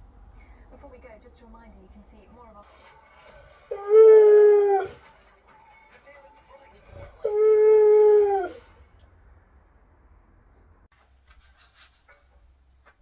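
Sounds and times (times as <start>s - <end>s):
faint tv music: 0.7s - 9.0s
dog howling: 3.7s - 5.0s, 7.0s - 8.8s.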